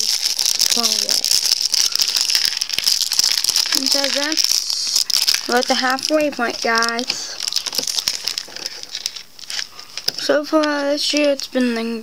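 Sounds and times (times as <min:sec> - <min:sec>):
plastic pieces rattling and clicking: 0:00.0 - 0:11.4
plastic bag crinkling: 0:00.0 - 0:11.5.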